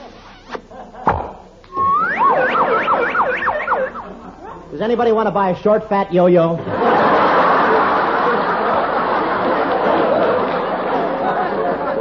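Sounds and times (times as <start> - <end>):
warbling slide whistle: 1.7 - 4.2.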